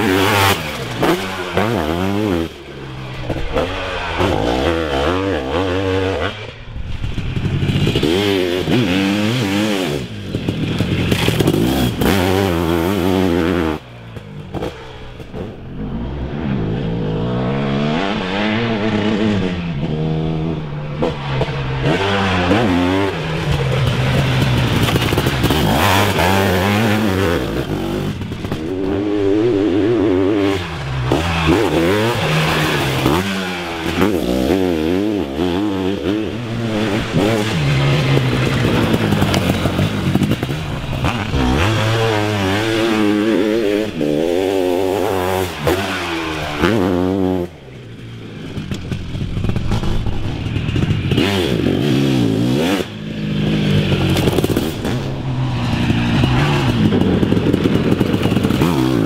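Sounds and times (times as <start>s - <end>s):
motocross engine revving: 0.0s - 59.0s.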